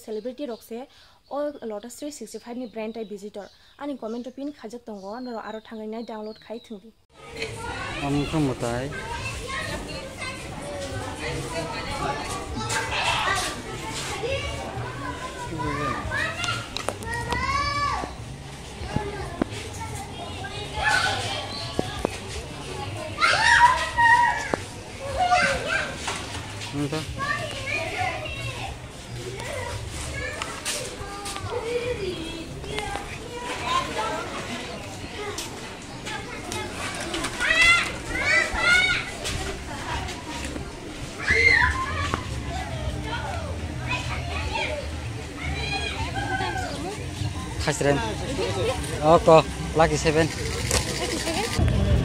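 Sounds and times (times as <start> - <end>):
voices chattering and calling: 0.0 - 52.0
children shouting at play: 7.2 - 47.6.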